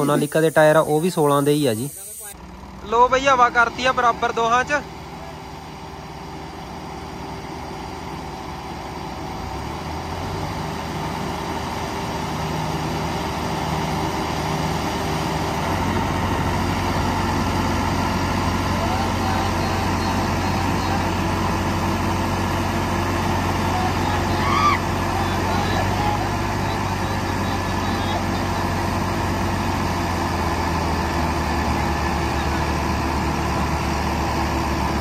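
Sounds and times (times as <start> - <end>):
diesel tractors revving: 0.0 - 35.0.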